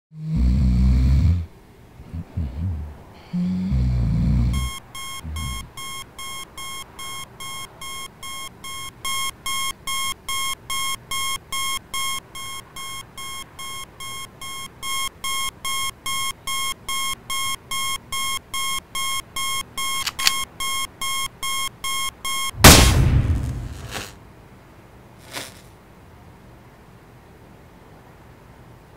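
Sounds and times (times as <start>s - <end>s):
alarm clock beeping: 4.6s - 22.7s.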